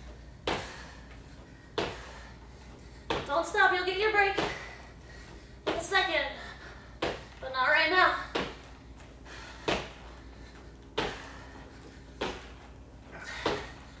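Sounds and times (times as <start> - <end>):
woman breathing hard: 0.0 - 3.2, 4.4 - 5.7, 6.3 - 7.4, 8.6 - 14.0.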